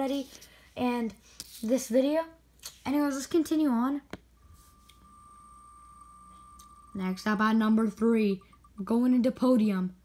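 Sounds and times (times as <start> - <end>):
high electronic tone: 4.4 - 8.9.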